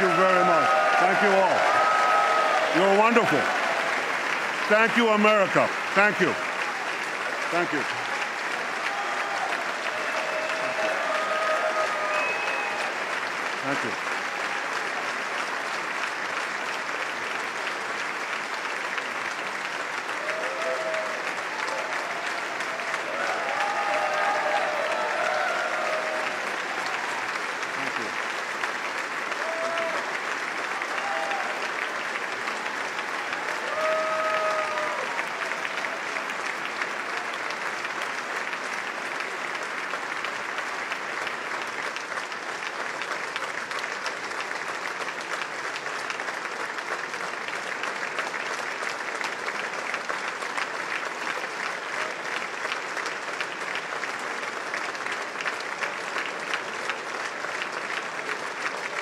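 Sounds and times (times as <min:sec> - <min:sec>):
audience applauding: 0:00.0 - 0:59.0.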